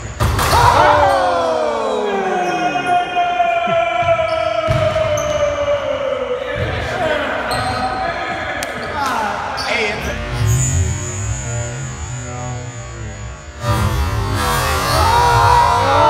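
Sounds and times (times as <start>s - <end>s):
long yell falling in pitch: 0.5s - 4.6s
young men shouting: 0.5s - 10.1s, 14.8s - 16.0s.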